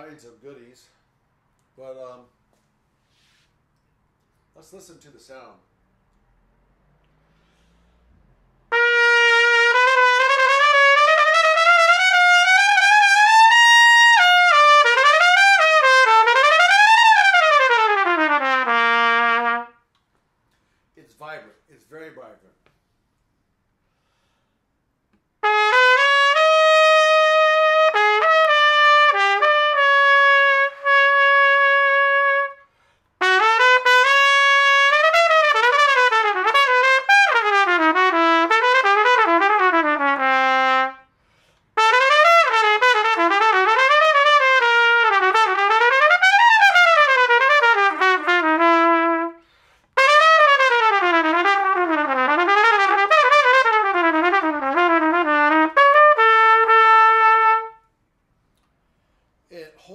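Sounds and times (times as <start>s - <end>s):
solo trumpet: 8.7s - 19.9s, 25.4s - 58.0s.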